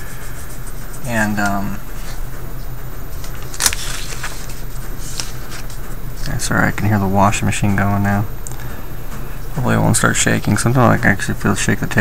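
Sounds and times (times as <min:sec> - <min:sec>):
washing machine humming: 0:00.0 - 0:12.0.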